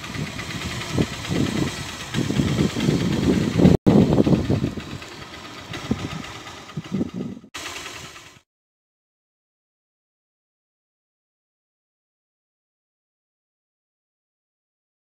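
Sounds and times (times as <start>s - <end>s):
highway traffic rumble: 0.0s - 8.4s.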